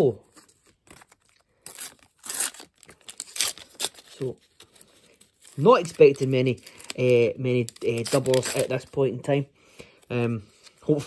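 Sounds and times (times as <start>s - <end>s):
wrapper ripping and crinkling: 0.6s - 9.0s.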